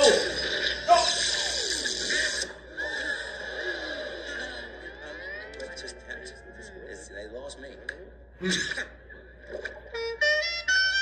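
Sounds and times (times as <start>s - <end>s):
sci-fi ray zapping: 0.0s - 2.6s.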